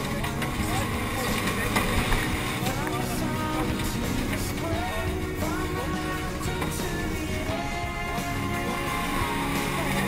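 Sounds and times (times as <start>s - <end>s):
rally car engine revving: 0.0s - 10.0s.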